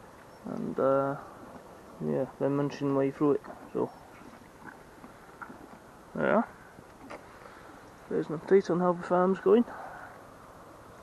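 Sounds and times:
cattle munching: 0:02.8 - 0:07.9.

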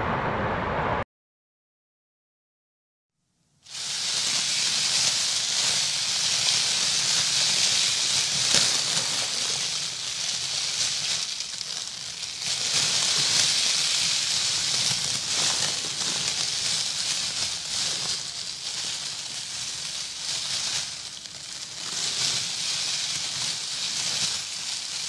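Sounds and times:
water spraying on plastic sheeting: 0:03.7 - 0:25.0.

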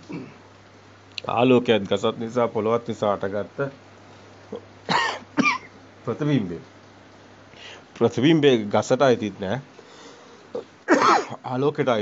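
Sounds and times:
person coughing: 0:00.0 - 0:00.4, 0:04.9 - 0:05.7, 0:10.6 - 0:11.4.

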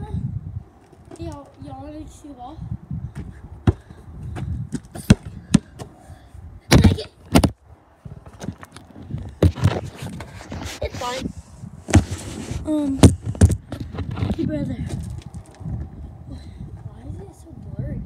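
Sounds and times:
basketball bouncing on gravel: 0:03.2 - 0:05.9.

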